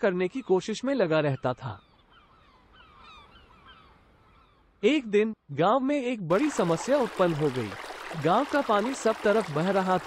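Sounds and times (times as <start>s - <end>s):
faint bird chirps: 0.0s - 4.8s.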